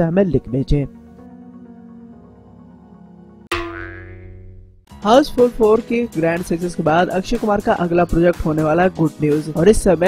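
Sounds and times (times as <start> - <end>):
soft background music: 0.0 - 3.5, 4.9 - 10.0
bright ringing musical hit: 3.5 - 4.7.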